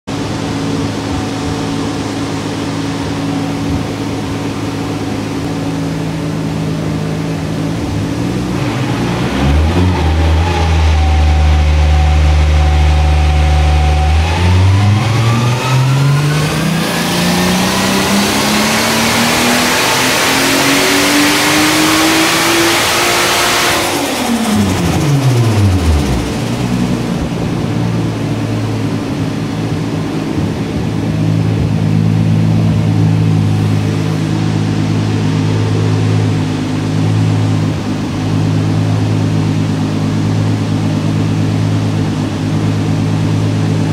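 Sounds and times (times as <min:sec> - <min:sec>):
car engine revving: 0:00.0 - 0:43.9.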